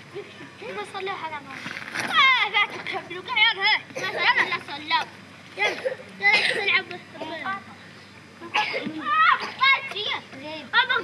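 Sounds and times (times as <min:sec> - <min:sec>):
child speaking: 0:00.6 - 0:11.0.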